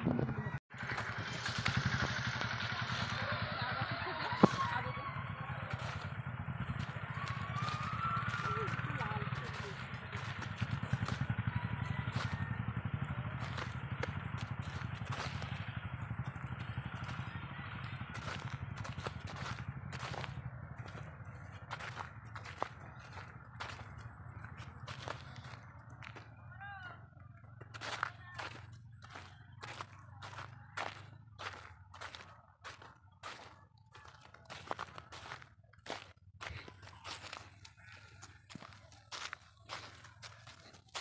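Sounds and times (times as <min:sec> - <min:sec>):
small engine running: 0:00.0 - 0:41.0
footsteps on dry soil: 0:00.4 - 0:03.2, 0:04.0 - 0:41.0.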